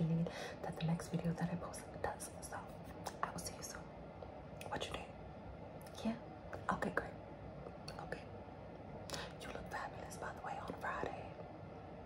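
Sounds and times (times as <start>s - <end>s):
woman whispering: 0.0s - 3.9s, 4.6s - 5.2s, 7.8s - 8.4s, 9.1s - 11.4s.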